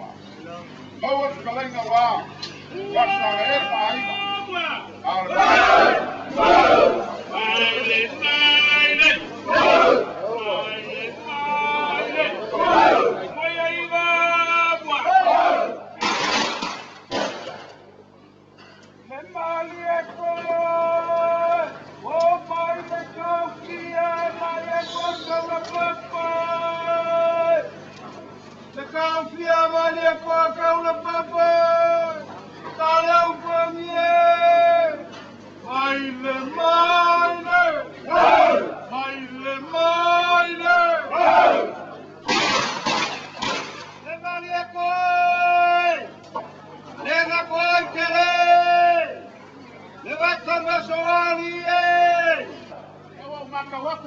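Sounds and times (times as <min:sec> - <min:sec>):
loud held vocal call: 0:02.7 - 0:15.9, 0:24.4 - 0:27.8, 0:36.6 - 0:38.9, 0:39.8 - 0:42.0
group chanting in unison: 0:05.3 - 0:07.2, 0:09.5 - 0:10.2, 0:12.3 - 0:13.3, 0:15.1 - 0:15.8, 0:38.1 - 0:38.8, 0:41.1 - 0:41.8
short called sounds: 0:24.5 - 0:25.6.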